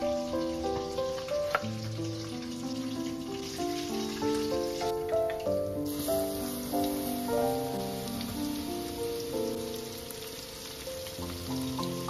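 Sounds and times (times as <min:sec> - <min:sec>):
gentle melodic background music: 0:00.0 - 0:12.0
oil sizzling deep-frying food: 0:00.0 - 0:12.0.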